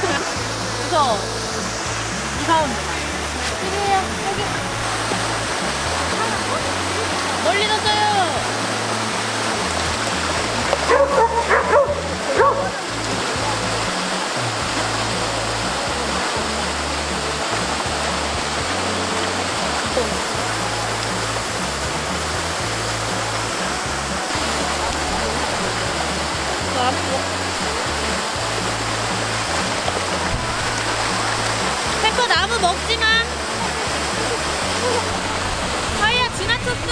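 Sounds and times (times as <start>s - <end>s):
background music with bass: 0.0s - 36.9s
stream running over stones: 0.0s - 36.9s
dog barking: 10.9s - 12.8s.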